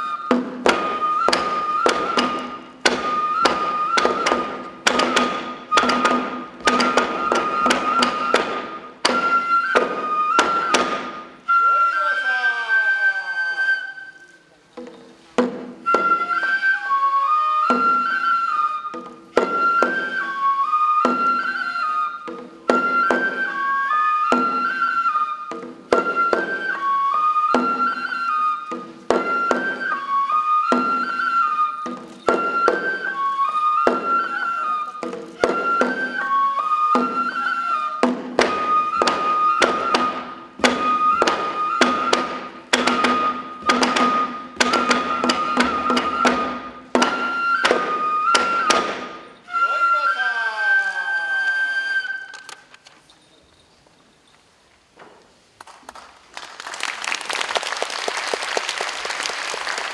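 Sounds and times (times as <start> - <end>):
bamboo flute melody: 0.0 - 53.4
sharp percussion strikes: 0.3 - 11.4, 38.0 - 49.4.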